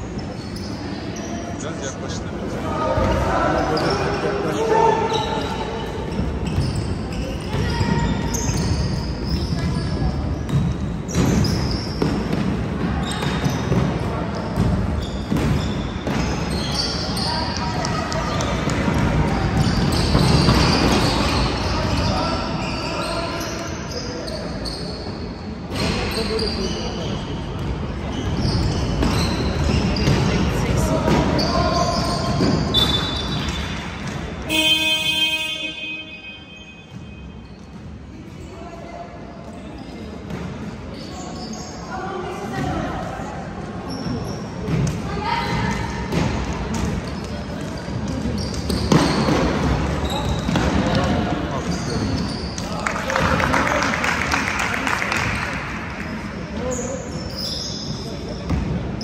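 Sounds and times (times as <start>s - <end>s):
players and spectators voices: 0.0s - 59.0s.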